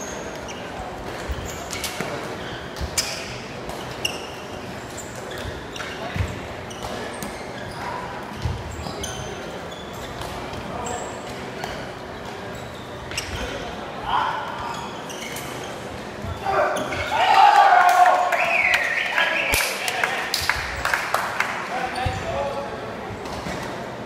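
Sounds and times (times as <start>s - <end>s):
shoe squeaks: 0.0s - 17.2s, 21.7s - 23.7s.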